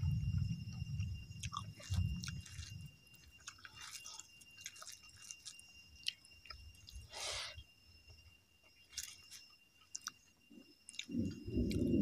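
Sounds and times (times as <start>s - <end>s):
faint steady high tone: 0.0s - 12.0s
person chewing: 1.4s - 7.5s, 8.8s - 11.9s.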